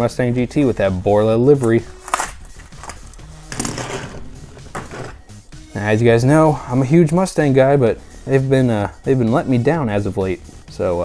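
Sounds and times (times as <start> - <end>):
plastic packaging tearing and crinkling: 1.6 - 3.2.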